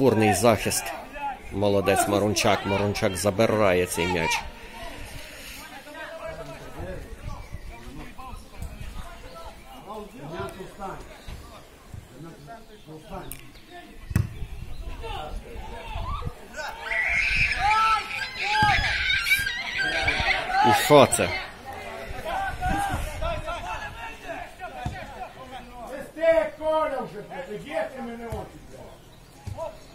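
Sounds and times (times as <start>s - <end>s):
distant voices calling out: 14.7s - 29.9s.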